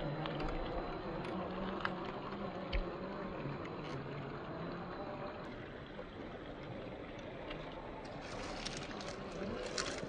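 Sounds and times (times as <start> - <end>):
electric motor whining: 0.0 - 5.6.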